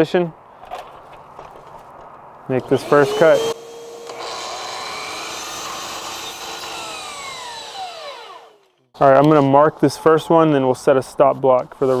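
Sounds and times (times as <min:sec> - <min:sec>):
miter saw cutting: 0:02.6 - 0:08.9.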